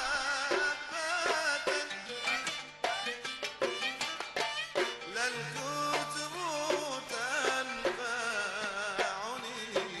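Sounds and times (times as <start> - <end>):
song with ensemble accompaniment: 0.0 - 10.0.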